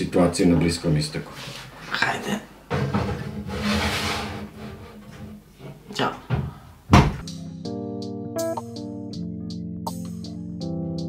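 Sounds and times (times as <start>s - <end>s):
baking tray sliding onto oven rack: 2.7s - 5.4s
guitar and keyboard music: 7.2s - 11.0s.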